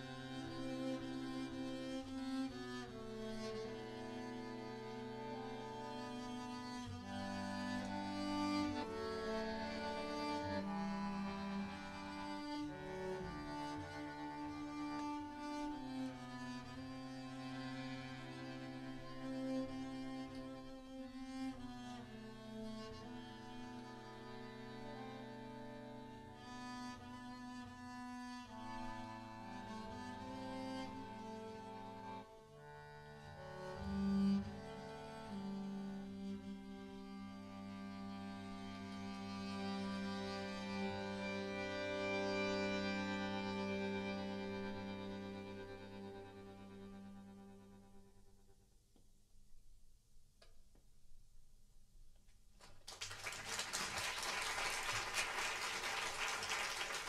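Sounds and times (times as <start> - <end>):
tango chamber music: 0.0 - 48.2.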